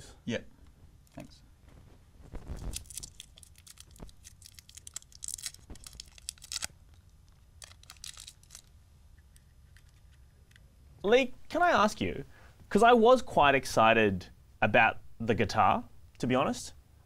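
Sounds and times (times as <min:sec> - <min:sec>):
wrapper crinkling: 0:02.3 - 0:08.8.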